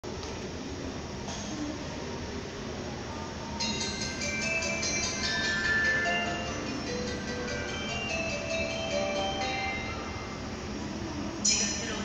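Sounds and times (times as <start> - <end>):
station background noise: 0.0 - 12.0
platform chime melody: 3.6 - 10.5.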